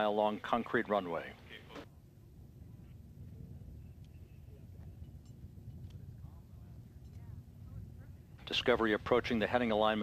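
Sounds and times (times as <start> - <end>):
low steady rumble: 0.0 - 10.0
faint indistinct voices: 3.2 - 9.2.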